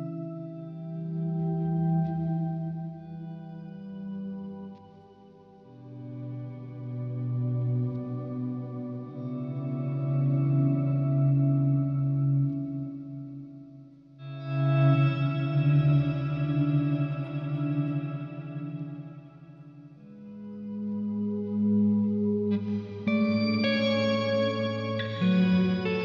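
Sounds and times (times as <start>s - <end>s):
electric guitar chords: 0.0s - 26.0s.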